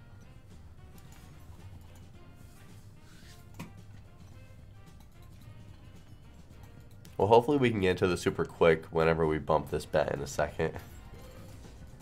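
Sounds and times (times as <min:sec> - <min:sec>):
quiet slot game music: 0:00.0 - 0:12.0.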